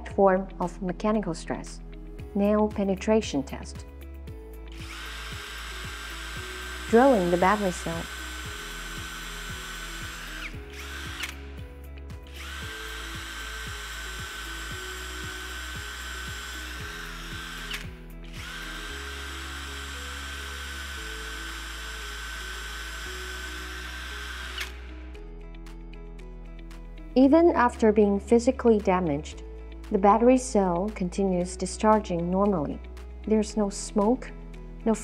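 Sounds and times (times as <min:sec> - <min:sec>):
cordless drill motor whine: 0:04.3 - 0:25.2.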